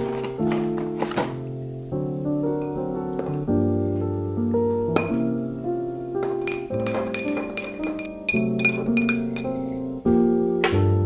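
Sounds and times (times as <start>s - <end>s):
teaspoon clinking in mug: 6.2s - 9.5s.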